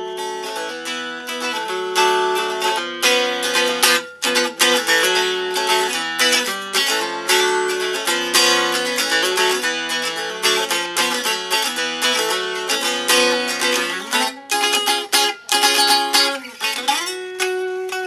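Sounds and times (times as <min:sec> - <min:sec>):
guitar strummed rapidly: 0:00.0 - 0:18.0.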